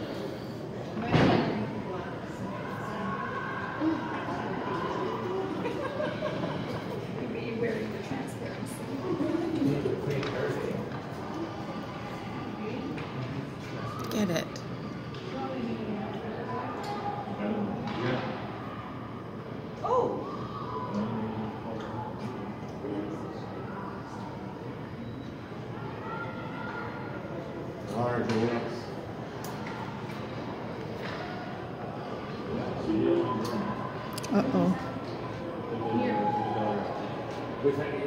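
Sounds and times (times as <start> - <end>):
chatter of spectators: 0.0 - 38.0.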